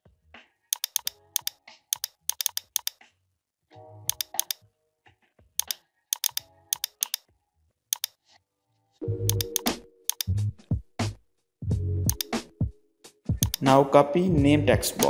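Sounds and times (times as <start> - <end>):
soft background music: 0.0 - 15.0
typing on computer keyboard: 0.8 - 3.0, 4.1 - 4.6, 5.6 - 7.2, 8.0 - 8.2, 9.3 - 10.3, 12.1 - 12.4, 13.4 - 13.6.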